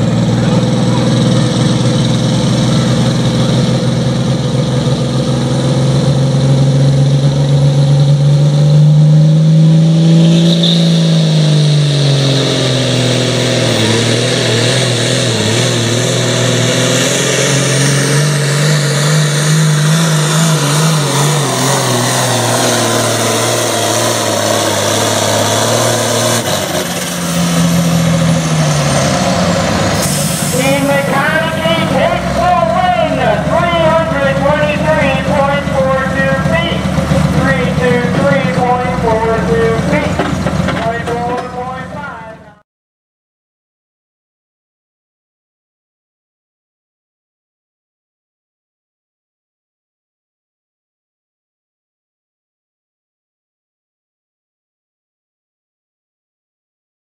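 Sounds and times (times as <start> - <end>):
tractor engine at full throttle: 0.0 - 42.6.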